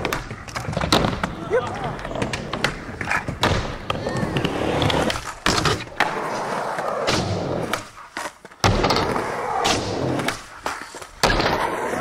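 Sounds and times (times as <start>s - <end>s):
skateboard wheels rolling on wood: 0.0s - 12.0s.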